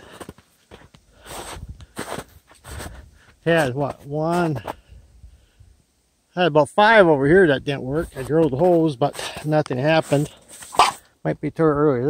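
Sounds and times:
footsteps in snow: 0.0s - 4.9s, 8.0s - 11.0s.

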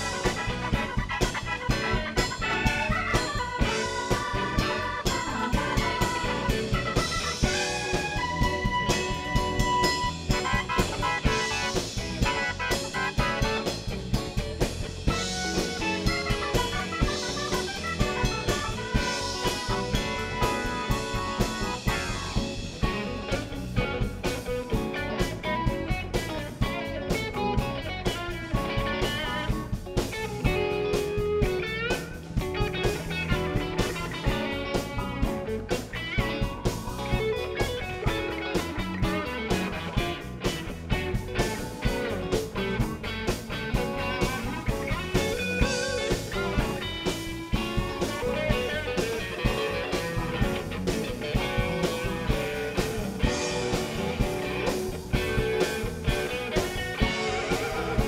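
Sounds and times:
blues band playing: 0.0s - 58.0s.

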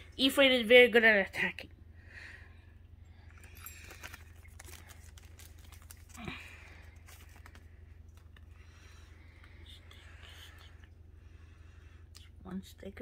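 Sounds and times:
packaging rustling: 3.4s - 8.6s.

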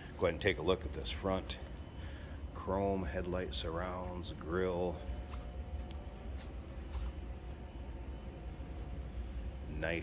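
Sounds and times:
faint steady tones: 0.0s - 10.0s
low room hum: 0.0s - 10.0s.

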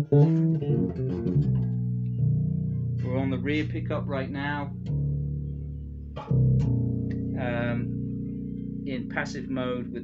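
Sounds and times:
electric bass plucked notes: 0.0s - 10.0s.

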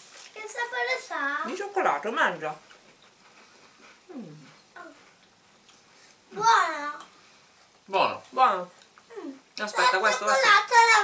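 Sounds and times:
person humming while chewing: 4.0s - 5.3s.

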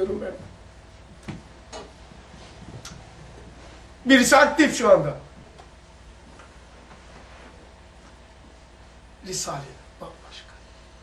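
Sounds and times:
low steady hum: 0.0s - 11.0s
man speaking: 4.0s - 5.3s, 9.2s - 10.6s.

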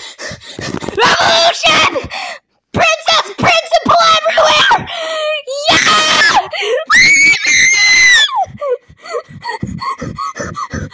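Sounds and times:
person yelling and screaming: 5.6s - 8.4s.

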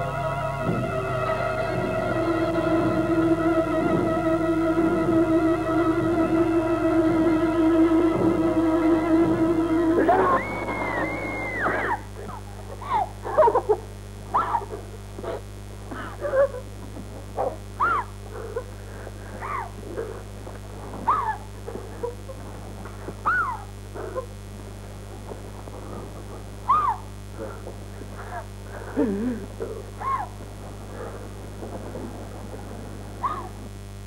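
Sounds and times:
steady low hum: 0.0s - 34.0s
person crying in whimpering sobs: 9.8s - 13.7s, 28.4s - 30.4s.

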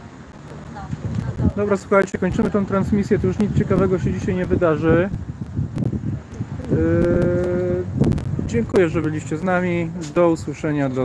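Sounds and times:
man's drawn-out hesitation sound: 1.5s - 11.0s.

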